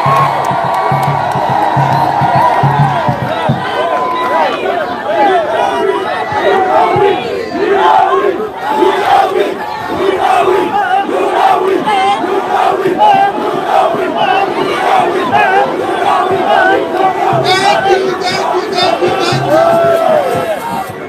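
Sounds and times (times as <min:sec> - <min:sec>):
crowd shouting and cheering: 0:00.0 - 0:21.0.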